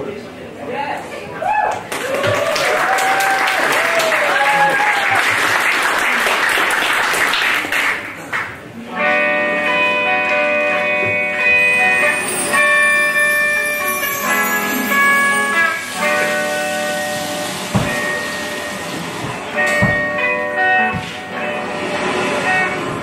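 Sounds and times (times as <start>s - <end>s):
keyboard and guitar chords: 8.8s - 23.0s.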